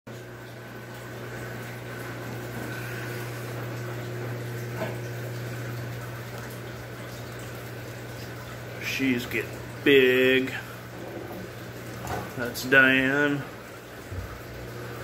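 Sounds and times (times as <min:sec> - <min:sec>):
water bubbling and trickling: 0:00.1 - 0:15.0.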